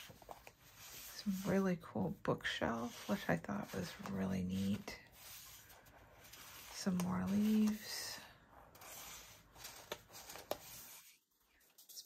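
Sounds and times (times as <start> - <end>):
paper sheets rustling: 0.0 - 12.0.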